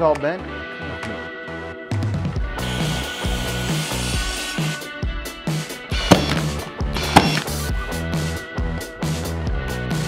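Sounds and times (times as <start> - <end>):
background music with steady beat: 0.0 - 10.0
nail gun shots into wood: 6.0 - 7.6.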